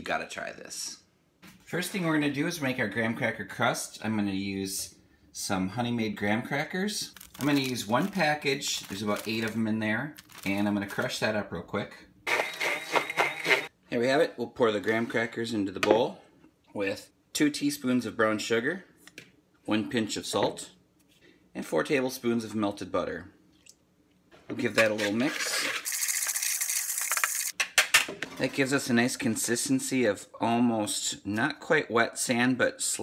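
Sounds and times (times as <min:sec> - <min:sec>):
crackers being crushed: 0:07.0 - 0:11.2, 0:25.6 - 0:28.0
spoon scraping plastic bowl: 0:12.3 - 0:13.7, 0:24.8 - 0:26.5.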